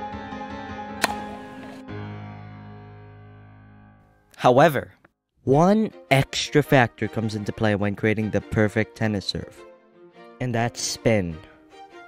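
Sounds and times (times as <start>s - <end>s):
background music: 0.0s - 4.6s, 5.4s - 12.0s
tennis racket hitting ball: 1.0s - 1.8s.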